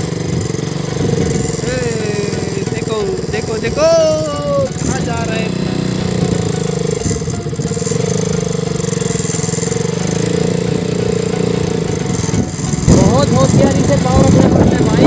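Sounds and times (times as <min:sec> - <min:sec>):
motorcycle engine running: 0:00.0 - 0:15.0.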